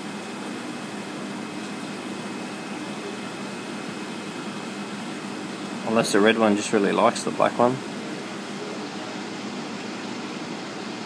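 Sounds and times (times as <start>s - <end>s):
mechanical hum and hiss: 0.0s - 11.0s.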